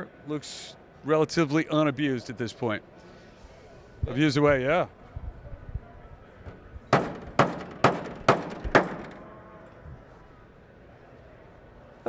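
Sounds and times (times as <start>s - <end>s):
hammer striking metal panel: 6.9s - 9.3s.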